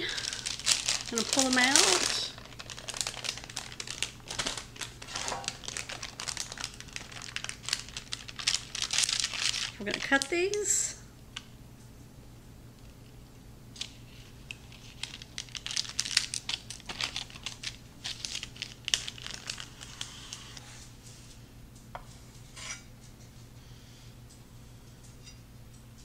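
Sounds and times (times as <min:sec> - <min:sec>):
parchment paper crinkling: 0:00.0 - 0:10.6, 0:13.8 - 0:20.6.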